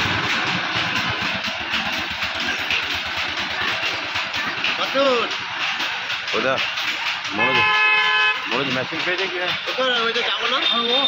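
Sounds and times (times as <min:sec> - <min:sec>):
people talking: 0:01.9 - 0:11.0
vehicle horn honking: 0:07.3 - 0:08.7.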